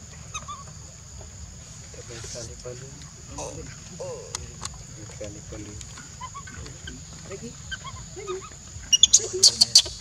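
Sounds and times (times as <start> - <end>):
high-pitched animal call: 6.1 - 10.0.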